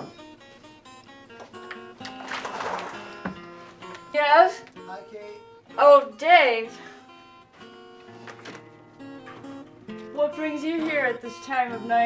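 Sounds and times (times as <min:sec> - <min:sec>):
plucked guitar music: 0:00.0 - 0:12.0.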